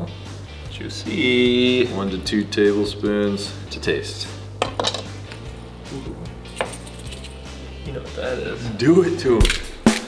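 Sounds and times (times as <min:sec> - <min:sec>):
quiet music with low bass: 0:00.0 - 0:10.0.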